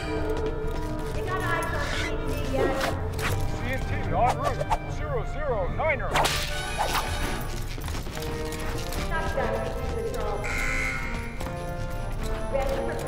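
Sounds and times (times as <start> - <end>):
soundtrack music with sustained tones: 0.0 - 13.0.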